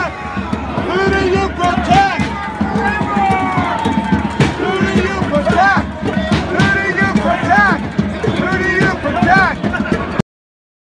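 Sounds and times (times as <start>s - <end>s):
long drawn-out shout: 0.0s - 10.0s
crowd chanting and shouting: 0.0s - 10.2s.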